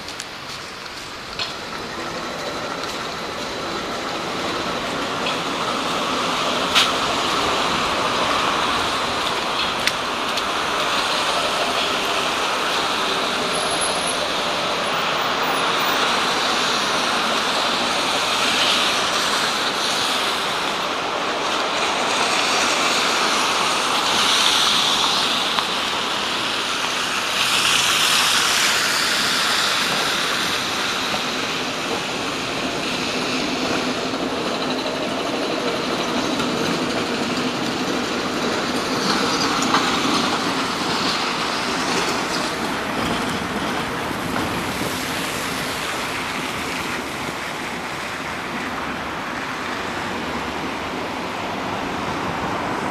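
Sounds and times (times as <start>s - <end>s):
cars passing on wet road: 0.0s - 52.9s.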